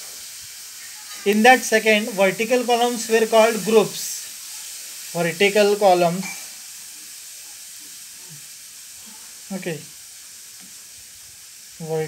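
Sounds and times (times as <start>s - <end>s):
recording hiss: 0.0s - 12.0s
man speaking: 1.3s - 4.2s, 5.2s - 6.3s, 9.5s - 9.9s, 11.8s - 12.0s.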